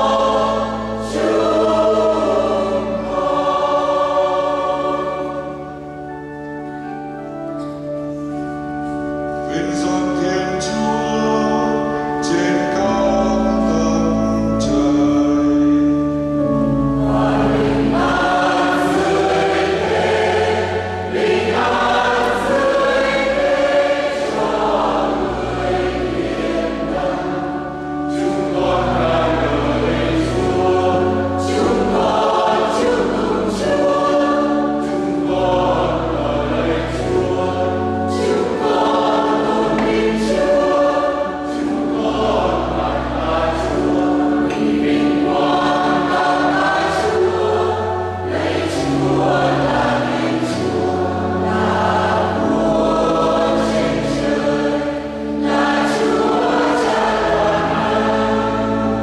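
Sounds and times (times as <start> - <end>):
choir singing a hymn: 0.0 - 59.0
low sustained accompaniment: 0.0 - 59.0.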